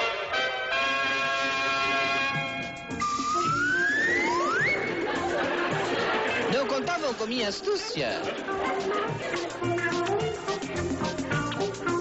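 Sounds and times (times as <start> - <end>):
theme music: 0.0 - 12.0
rising whistle-like glides: 3.0 - 5.0.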